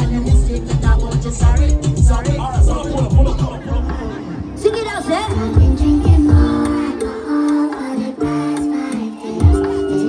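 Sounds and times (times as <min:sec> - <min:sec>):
afrobeats music over sound system: 0:00.0 - 0:10.0.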